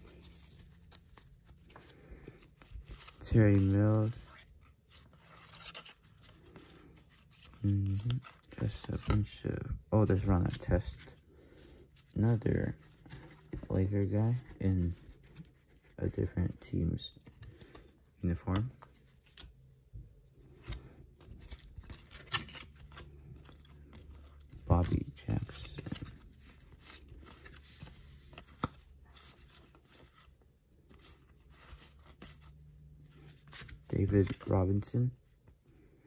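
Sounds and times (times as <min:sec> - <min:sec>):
trading cards sliding and flipping: 0:20.4 - 0:34.9.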